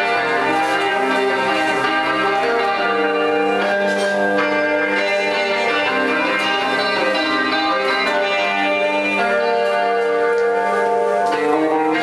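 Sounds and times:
slow electric guitar instrumental: 0.0 - 12.0.

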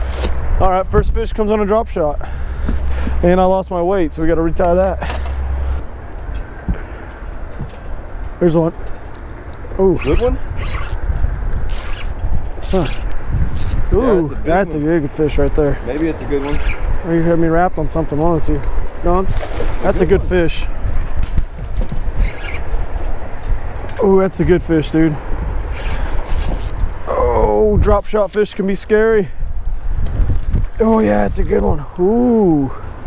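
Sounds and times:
strong wind on microphone: 0.0 - 3.2, 9.6 - 33.0.

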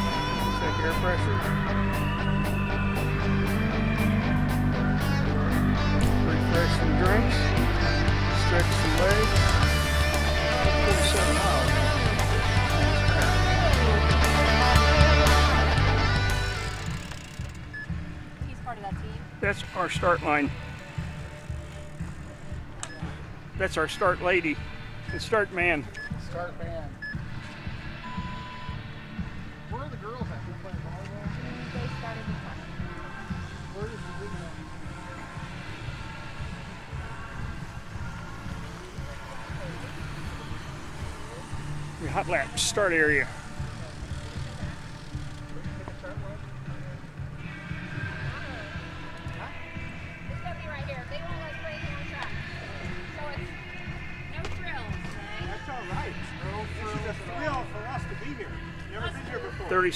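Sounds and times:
distant voices: 0.0 - 59.9
music: 0.0 - 59.9
electronic countdown beeps: 25.0 - 26.3, 27.0 - 27.4, 28.0 - 28.9.

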